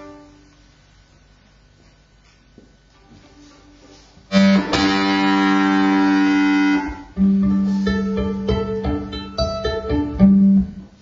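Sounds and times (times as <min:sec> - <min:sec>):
violin bowed low note: 0:00.0 - 0:00.5, 0:03.0 - 0:10.9.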